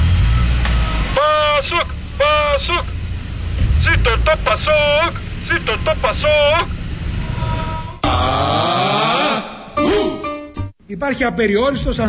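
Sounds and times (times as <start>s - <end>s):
street traffic rumble: 0.0s - 8.0s
comic sliding sound effect: 7.1s - 10.2s.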